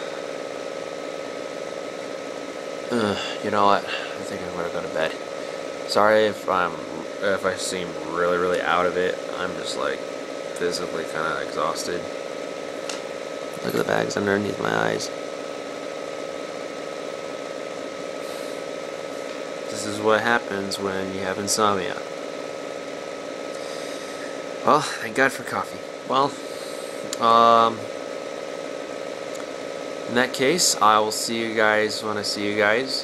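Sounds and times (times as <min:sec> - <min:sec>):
fan hum: 0:00.0 - 0:33.0
man's voice: 0:13.6 - 0:15.1.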